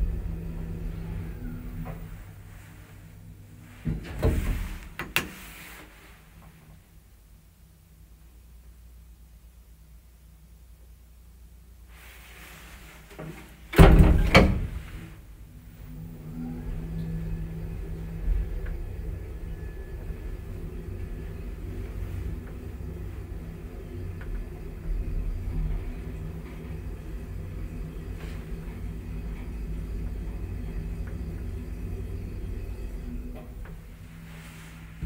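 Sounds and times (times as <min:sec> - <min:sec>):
short rumble: 0:00.0 - 0:06.6, 0:11.9 - 0:35.0
elevator low hum: 0:00.0 - 0:35.0
elevator door clicks: 0:13.7 - 0:15.0.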